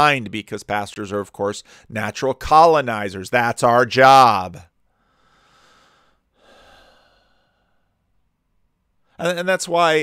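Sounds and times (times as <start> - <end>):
man breathing in: 1.6 - 1.9, 4.9 - 8.0.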